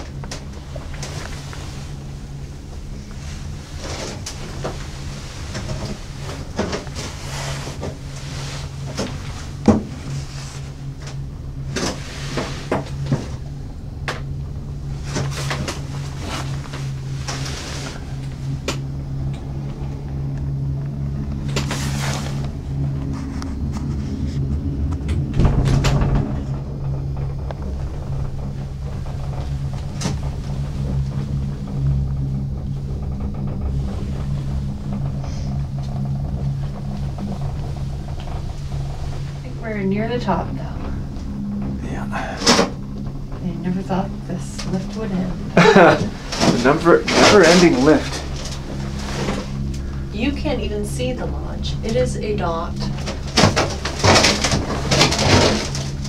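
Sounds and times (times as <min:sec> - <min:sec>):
cabin creaks and clicks: 0:00.0 - 0:50.1, 0:52.7 - 0:56.0
gondola cabin low hum: 0:00.0 - 0:56.0
heavy low rumble: 0:00.0 - 0:56.0.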